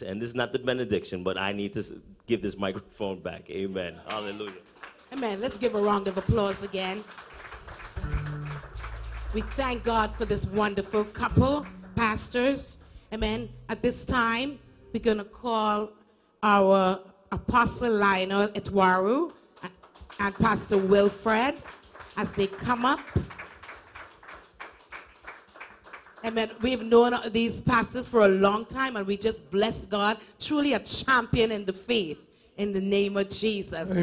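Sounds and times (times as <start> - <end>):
low room noise: 1.9 - 17.3
electric guitar low notes: 7.8 - 15.5.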